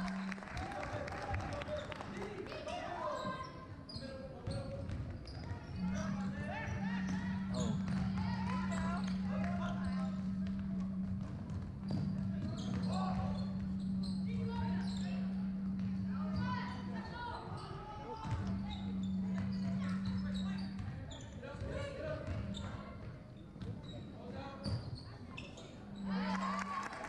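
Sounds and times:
steady low hum: 0.0 - 0.8, 5.7 - 21.0, 25.8 - 27.0
echoing voices: 5.4 - 23.1, 25.7 - 27.0.

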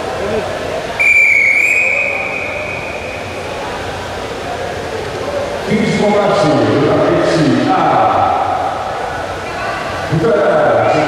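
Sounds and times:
arena crowd noise: 0.0 - 11.0
referee's whistle blast: 1.0 - 3.4.

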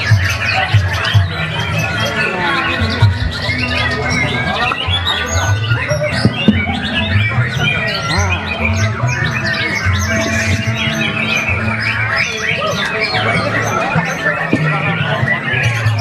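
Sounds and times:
background music with low bass: 0.0 - 16.0
caged birds singing: 0.0 - 16.0.

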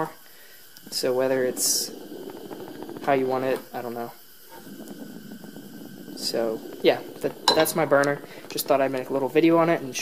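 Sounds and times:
gas burner flame: 0.0 - 10.0.

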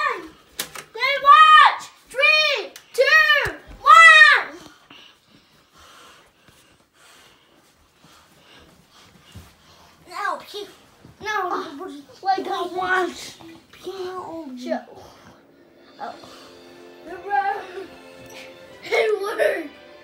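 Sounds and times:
child laughing: 18.8 - 19.7.

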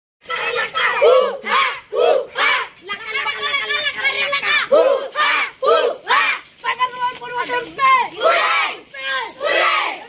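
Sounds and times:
children shouting rhythmically: 0.2 - 10.0.

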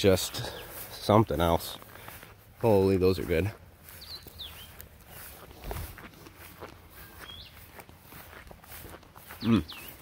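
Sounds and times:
footsteps in long grass: 0.0 - 10.0.

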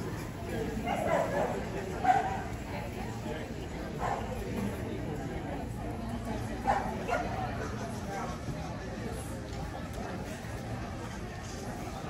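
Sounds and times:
murmur of people talking: 0.0 - 12.0
dog barking: 0.9 - 2.3.

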